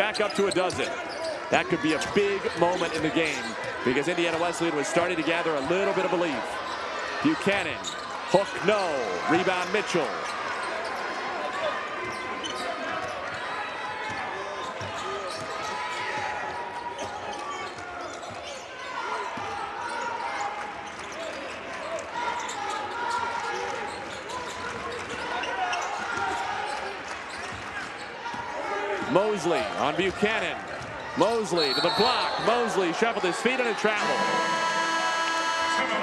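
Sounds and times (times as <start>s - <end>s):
players' voices: 0.0s - 20.3s, 27.7s - 36.0s
crowd chatter: 0.0s - 36.0s.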